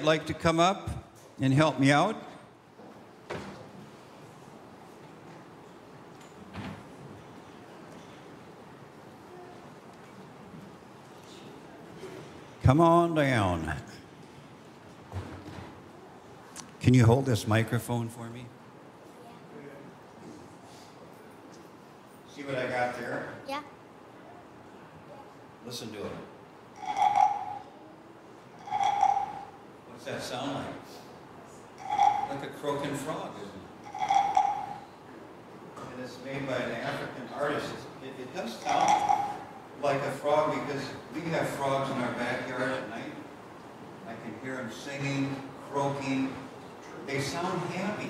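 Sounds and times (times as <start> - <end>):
faint steady hiss: 0.0 - 48.0
wooden frog rasp croaking: 26.8 - 27.6, 28.6 - 29.5, 31.8 - 32.4, 33.9 - 34.8, 38.6 - 39.5.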